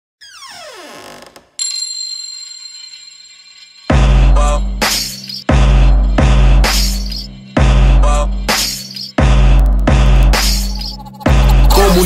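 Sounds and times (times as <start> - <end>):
bright ringing chime: 1.6 - 7.6.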